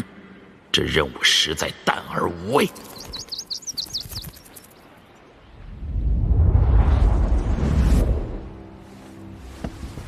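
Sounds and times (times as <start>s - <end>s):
bird chirping: 2.4s - 5.2s.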